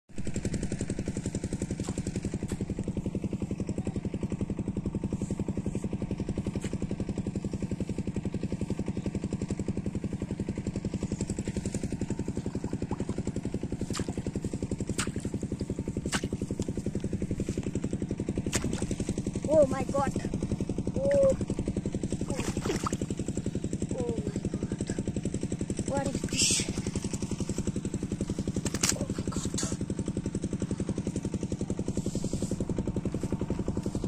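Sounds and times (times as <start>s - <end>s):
small engine chugging: 0.1s - 34.0s.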